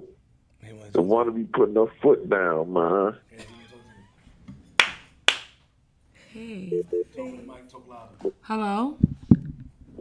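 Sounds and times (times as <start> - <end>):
hand claps: 4.7 - 5.6.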